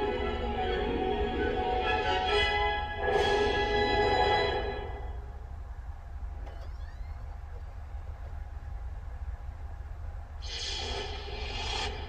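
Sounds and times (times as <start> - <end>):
low room rumble: 0.0 - 12.0
faint high rising squeak: 6.5 - 7.4.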